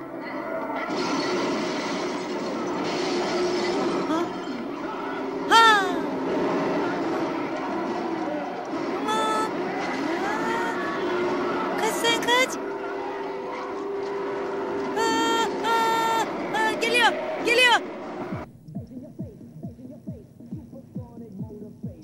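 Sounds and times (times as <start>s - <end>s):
noisy rumbling background: 0.0s - 22.0s
voices wailing: 2.6s - 18.5s.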